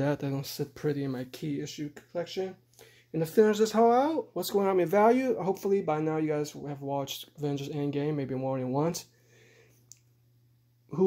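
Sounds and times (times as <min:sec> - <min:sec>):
small click: 0:09.9 - 0:10.1.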